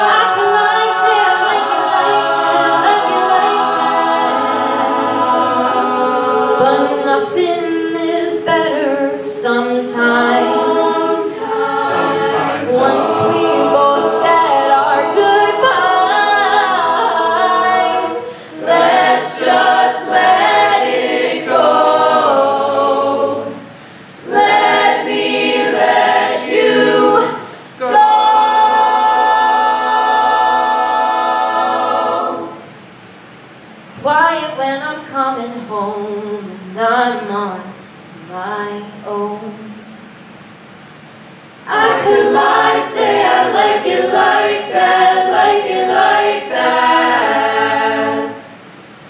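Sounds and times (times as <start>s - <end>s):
a cappella group singing in harmony: 0.0s - 33.0s, 34.0s - 40.2s, 41.6s - 49.0s.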